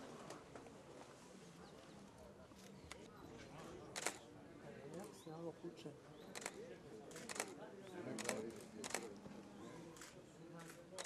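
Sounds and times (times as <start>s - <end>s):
faint distant voices: 0.0s - 11.0s
quiet outdoor ambience: 0.0s - 11.0s.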